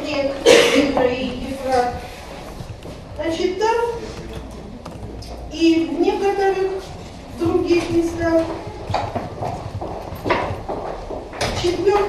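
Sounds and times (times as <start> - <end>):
person speaking: 0.0 - 10.0.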